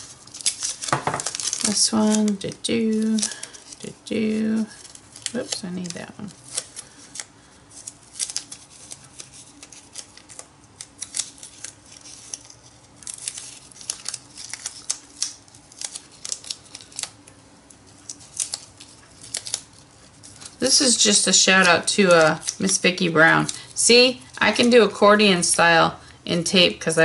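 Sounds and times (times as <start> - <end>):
paper tape crinkling: 0.0 - 25.8.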